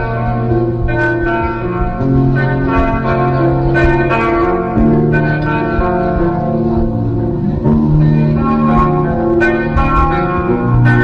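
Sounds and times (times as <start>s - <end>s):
rock band sustained chords: 0.0s - 11.0s.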